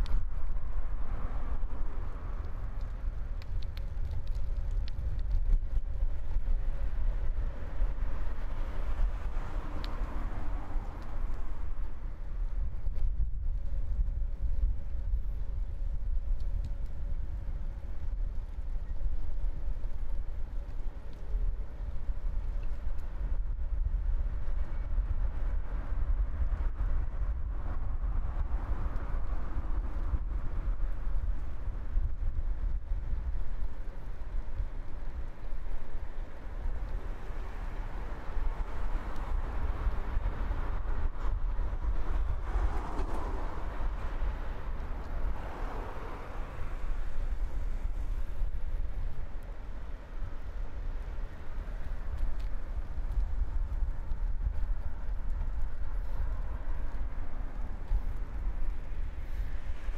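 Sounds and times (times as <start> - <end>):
steady low rumble: 0.0 - 59.9
vehicles passing: 5.7 - 12.9, 33.0 - 59.9.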